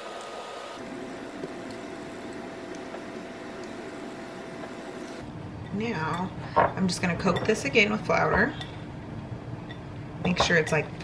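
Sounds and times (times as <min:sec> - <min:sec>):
background hum and hiss: 0:00.0 - 0:11.0.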